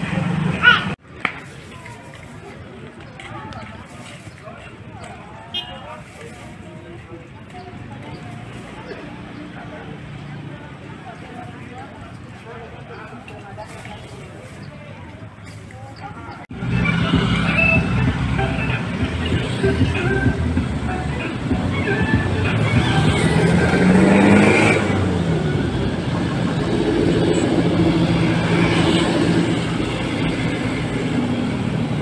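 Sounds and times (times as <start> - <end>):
passing motor traffic: 0.0 - 1.0, 4.5 - 32.0
indistinct voices talking: 1.7 - 32.0.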